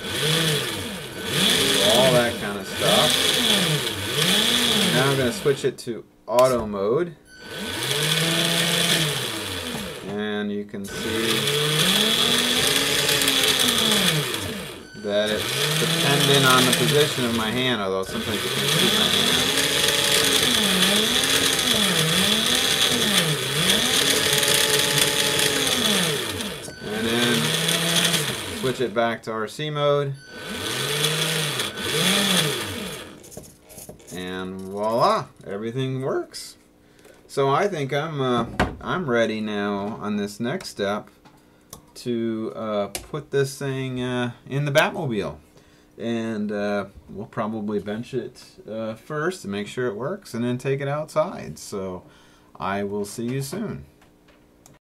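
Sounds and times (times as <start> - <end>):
electric motor humming: 0.0 - 5.7, 7.3 - 29.0, 30.2 - 33.5.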